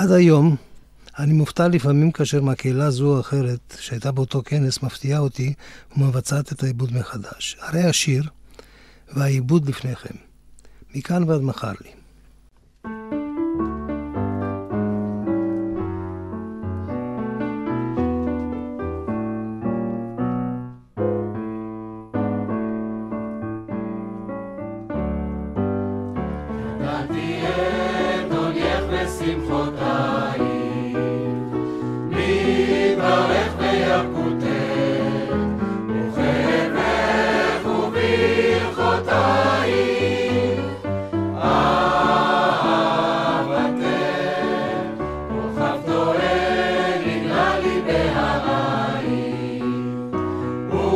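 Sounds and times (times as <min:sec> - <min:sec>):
solo piano chords: 0:12.8 - 0:50.9
mixed choir singing: 0:26.5 - 0:50.9.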